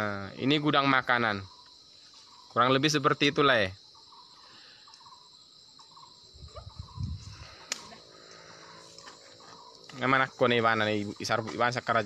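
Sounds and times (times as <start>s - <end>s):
insect chirps: 0.0s - 12.0s
insect drone: 0.0s - 12.0s.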